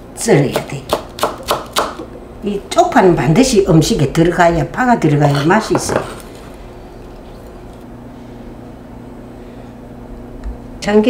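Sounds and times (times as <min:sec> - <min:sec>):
low kitchen hum: 0:00.0 - 0:11.0.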